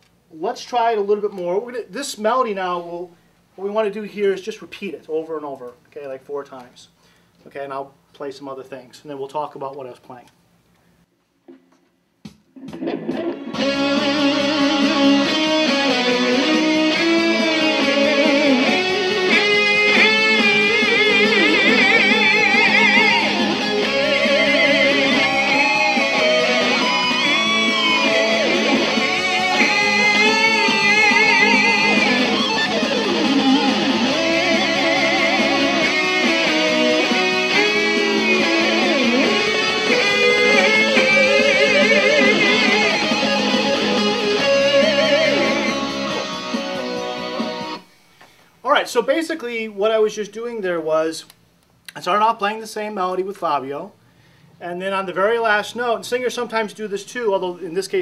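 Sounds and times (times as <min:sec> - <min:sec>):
electric guitar lead melody: 0:12.6 - 0:47.9.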